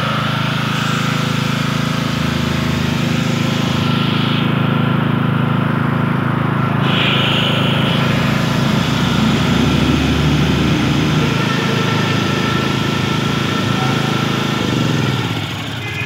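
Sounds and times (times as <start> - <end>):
generator engine running: 0.0 - 16.0.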